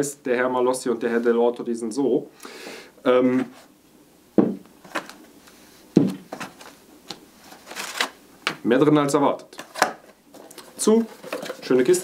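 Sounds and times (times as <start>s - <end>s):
cardboard rustling: 5.9s - 8.2s, 9.6s - 12.0s.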